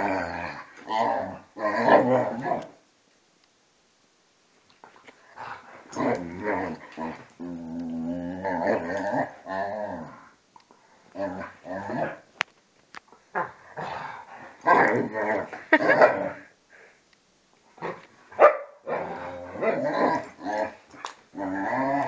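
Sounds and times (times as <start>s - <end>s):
dogs growling: 5.3s - 10.4s, 11.1s - 12.2s, 13.4s - 16.5s, 18.8s - 22.0s.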